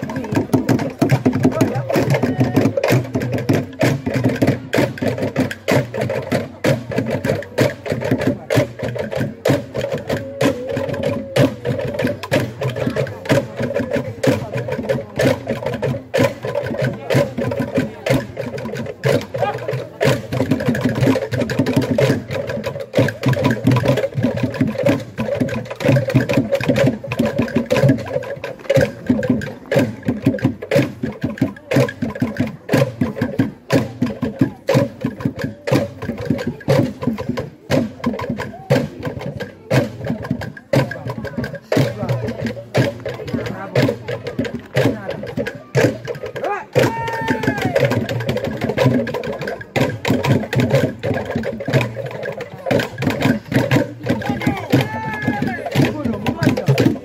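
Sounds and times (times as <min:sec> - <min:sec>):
struck percussion beat: 0:00.0 - 0:57.0.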